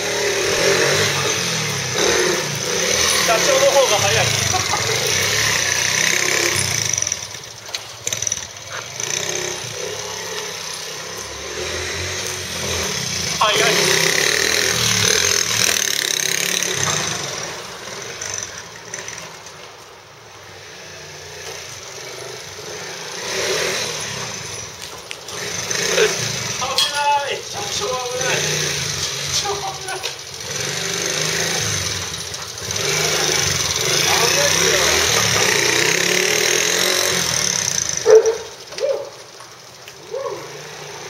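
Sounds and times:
motorcycle engine running: 0.0 - 19.6, 20.4 - 41.0.

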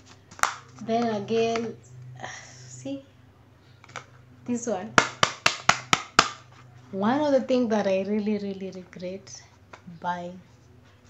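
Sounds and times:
taps on plastic toothbrush holder: 5.0 - 6.4.

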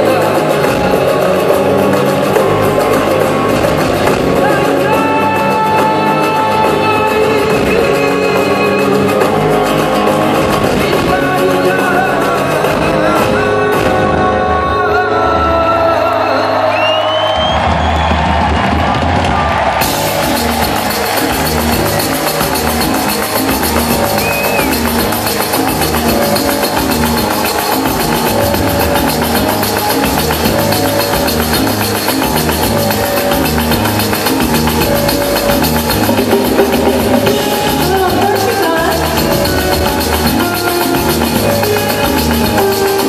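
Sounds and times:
drum beat: 0.0 - 14.1, 17.6 - 43.0
live pop-rock concert music: 0.0 - 43.0.

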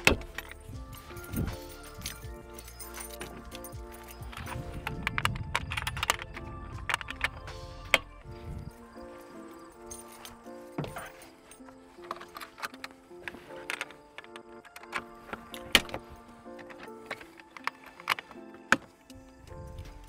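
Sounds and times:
background music with held notes: 0.0 - 20.0.

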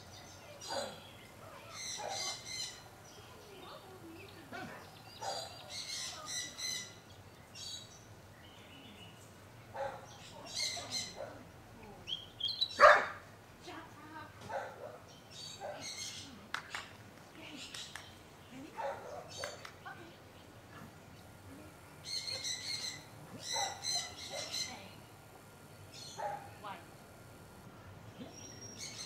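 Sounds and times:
birds chirping: 0.0 - 13.2, 14.5 - 16.4, 17.3 - 27.6, 28.2 - 29.0.

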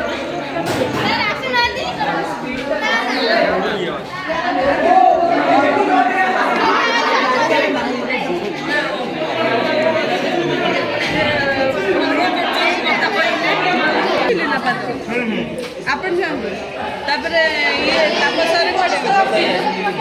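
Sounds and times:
crowd chatter: 0.0 - 20.0.

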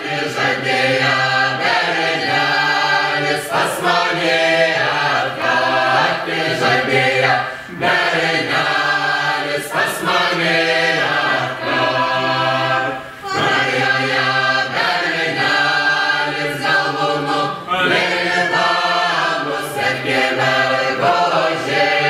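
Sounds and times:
mixed choir singing a cappella: 0.0 - 22.0.

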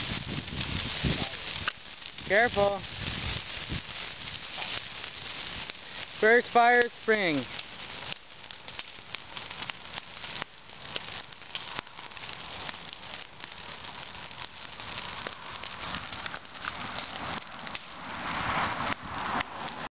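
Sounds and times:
fire crackling and popping: 0.0 - 19.9
hissing flames: 0.0 - 19.9.

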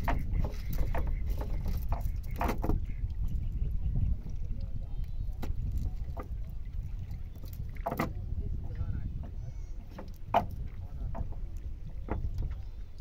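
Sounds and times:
wind on microphone: 0.0 - 13.0.

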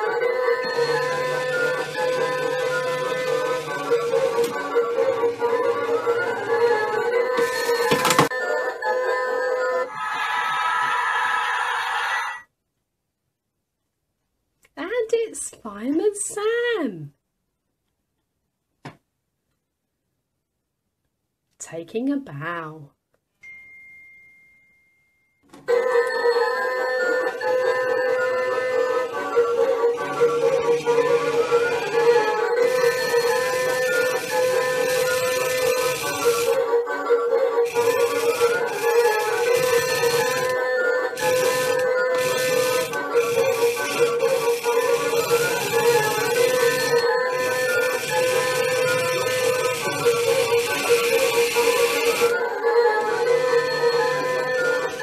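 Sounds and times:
tinny electronic tune: 27.0 - 36.6, 37.6 - 55.0.

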